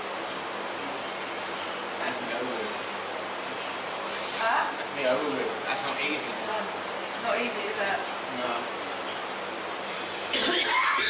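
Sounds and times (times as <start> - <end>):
man coughing: 10.3 - 11.0.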